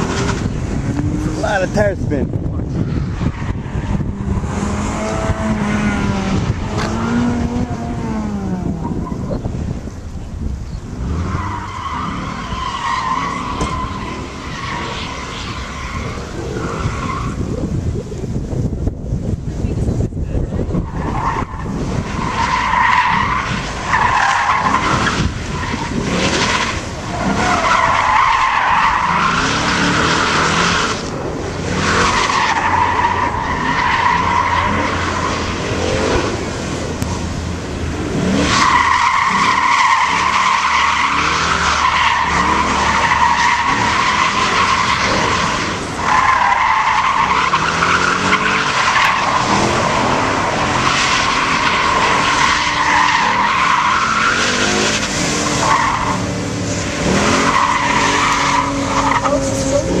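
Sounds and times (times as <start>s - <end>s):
car engine revving: 0.0s - 18.7s, 19.3s - 60.0s.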